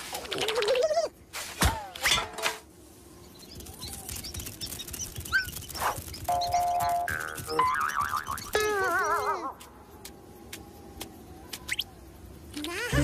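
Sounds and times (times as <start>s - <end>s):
small ticks and rising chirps: 3.1s - 12.8s.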